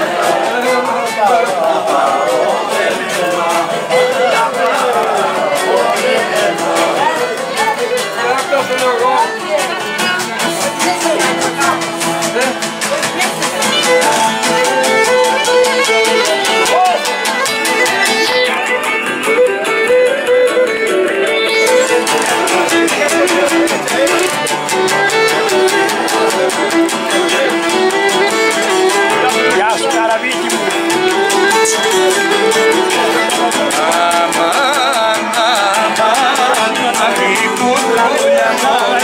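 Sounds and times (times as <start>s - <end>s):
strummed lute accompaniment: 0.0s - 39.0s.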